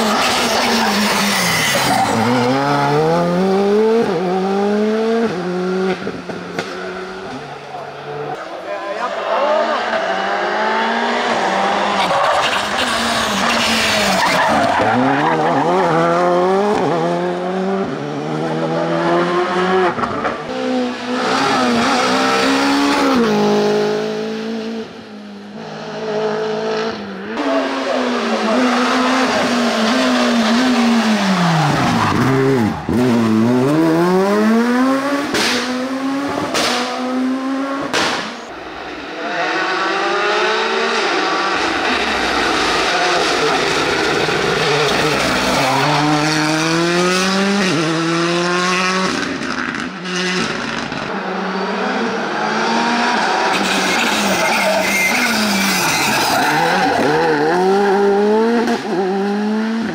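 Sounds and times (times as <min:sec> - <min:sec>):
rally car engines revving: 0:00.0 - 0:59.9.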